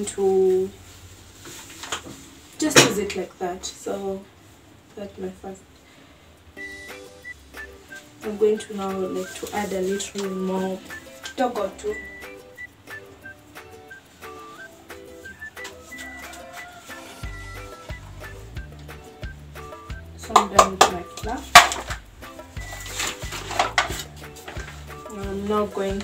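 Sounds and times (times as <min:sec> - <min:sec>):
background music with bass beat: 0:12.0 - 0:20.4, 0:21.3 - 0:26.0
kitchen containers knocking: 0:20.2 - 0:22.0.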